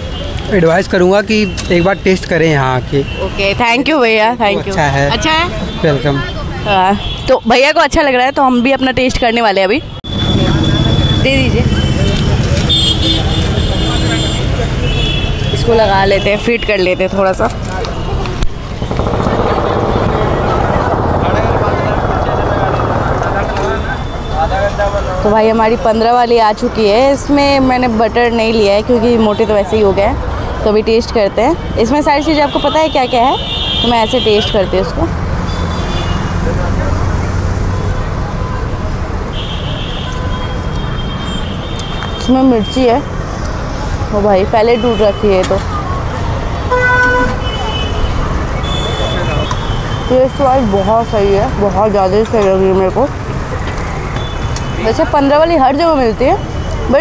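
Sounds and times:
vehicle horns tooting: 0:09.3 - 0:18.9, 0:31.4 - 0:36.4, 0:39.3 - 0:43.0, 0:44.5 - 0:45.6, 0:46.6 - 0:51.5
low street rumble: 0:09.9 - 0:57.0.

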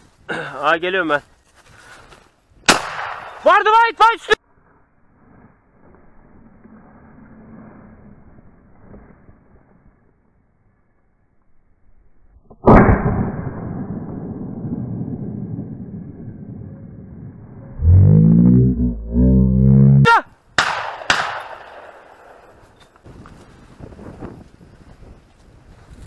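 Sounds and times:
shotgun shot echoing: 0:02.7 - 0:03.4, 0:20.6 - 0:22.4
sharp cracks: 0:02.7 - 0:03.6, 0:20.6 - 0:22.8
loud low buzz: 0:12.7 - 0:20.1.

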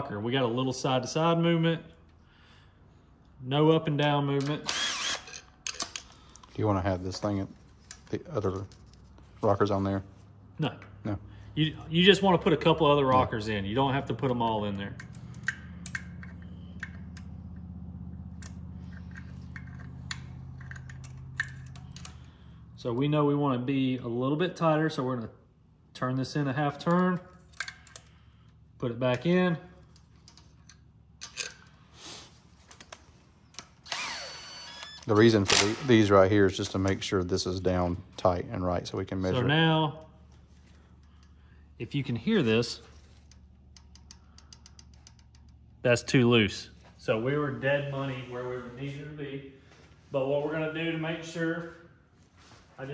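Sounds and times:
metallic clicks and taps: 0:14.9 - 0:22.3, 0:43.2 - 0:45.7.

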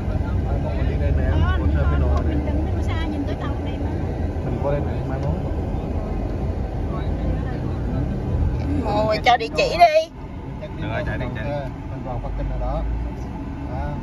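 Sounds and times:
car road and engine rumble: 0:00.0 - 0:14.0.

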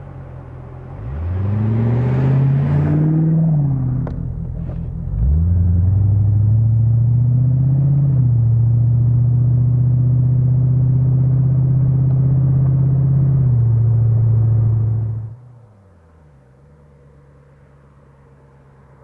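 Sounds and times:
car engine accelerating: 0:00.0 - 0:19.0.

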